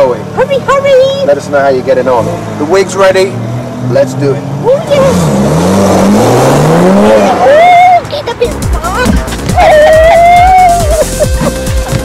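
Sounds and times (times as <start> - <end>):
car engine accelerating hard: 1.2 - 12.0.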